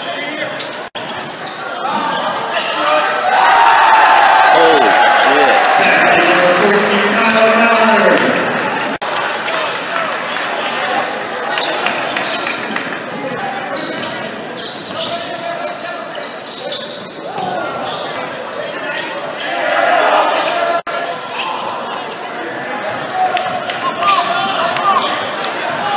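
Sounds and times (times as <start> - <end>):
crowd chatter and shouts: 0.0 - 25.9.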